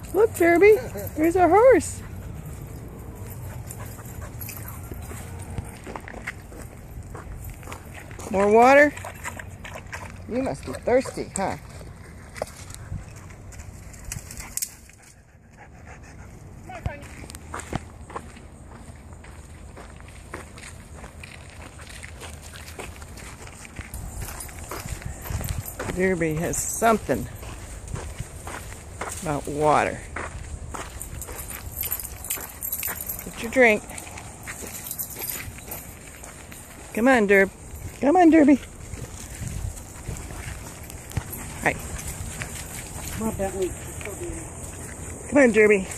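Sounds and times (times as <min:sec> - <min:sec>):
footsteps on gravel: 0:00.0 - 0:14.4, 0:16.7 - 0:45.9
low outdoor background: 0:00.0 - 0:45.9.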